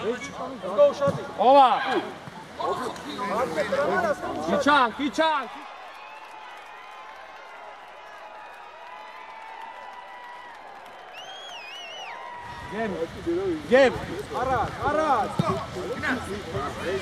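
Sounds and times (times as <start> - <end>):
distant voices of players and spectators: 0.0 - 17.0.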